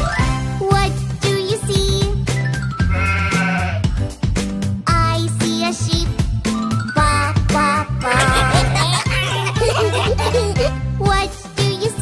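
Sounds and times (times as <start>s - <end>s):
upbeat children's song: 0.0s - 2.9s, 4.2s - 12.0s
sheep bleating: 2.9s - 3.9s.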